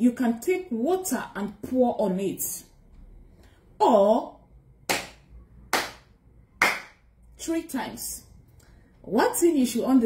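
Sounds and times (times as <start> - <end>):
hands clapping: 4.9 - 7.0.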